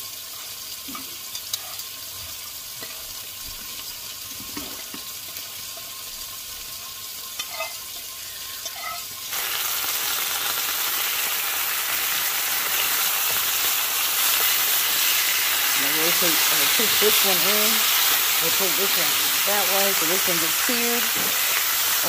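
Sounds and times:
meat sizzling in a frying pan: 0.0s - 22.0s.

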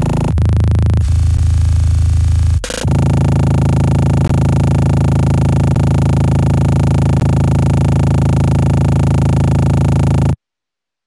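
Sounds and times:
buzzing stutter drone: 0.0s - 10.4s.

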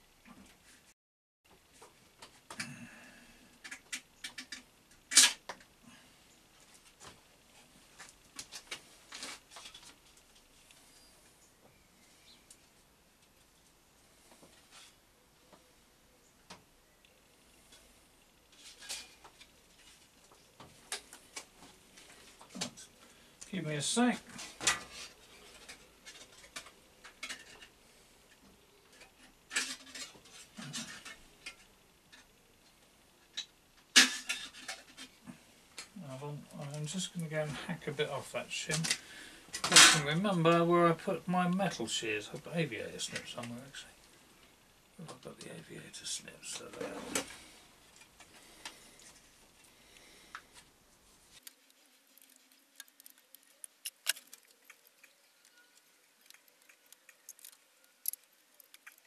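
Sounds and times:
small clicks and scrapes: 3.6s - 5.8s, 6.6s - 11.4s, 17.6s - 22.9s, 24.3s - 36.0s, 46.6s - 59.0s
small clicks and rattles: 51.3s - 59.0s.

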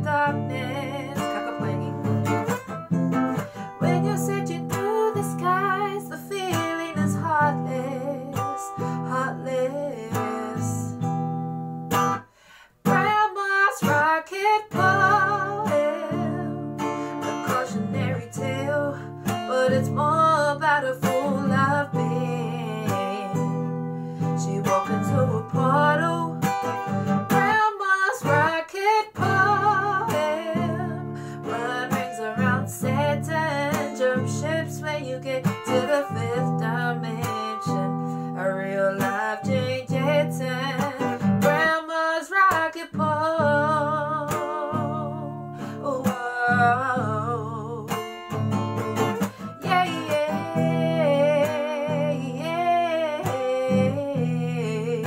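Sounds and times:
acoustic guitar strumming: 0.0s - 55.0s
woman singing: 0.0s - 55.0s.

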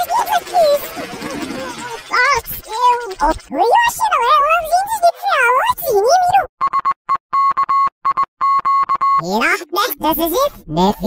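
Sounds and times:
processed cartoon voice: 0.0s - 6.5s, 9.2s - 11.0s.

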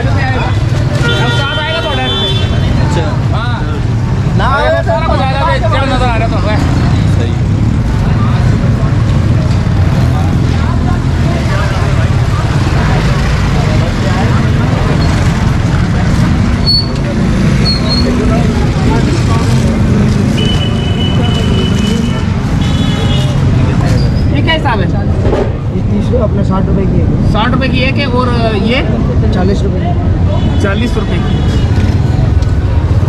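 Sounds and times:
people talking nearby: 0.0s - 33.0s
road traffic rumble: 0.0s - 33.0s.

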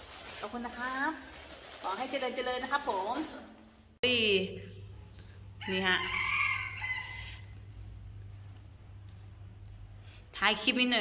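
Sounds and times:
rooster crowing: 5.6s - 7.5s
low hum: 7.4s - 10.6s.

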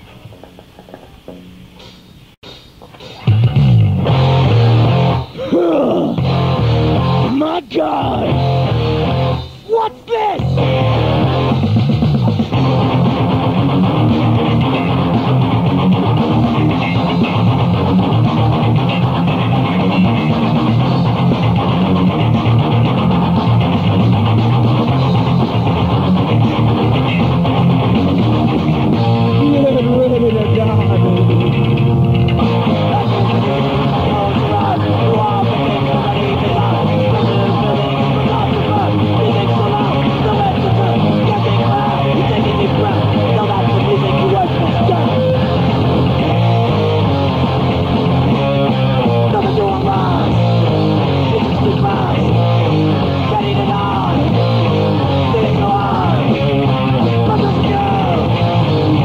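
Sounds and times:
bass guitar: 0.0s - 9.7s, 10.4s - 59.0s
distorted electric guitars: 0.0s - 59.0s
drums: 0.0s - 59.0s.

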